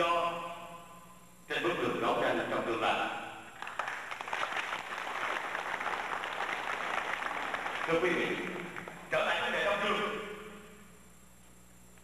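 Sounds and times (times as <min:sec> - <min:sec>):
crowd applauding: 0:03.6 - 0:09.1.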